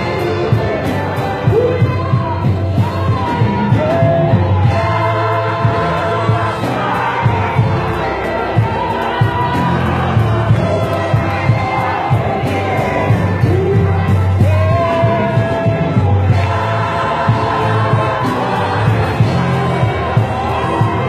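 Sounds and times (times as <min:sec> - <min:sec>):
deep bass line: 0:00.0 - 0:21.0
gospel choir singing: 0:00.0 - 0:21.0
steady drum beat: 0:00.0 - 0:21.0.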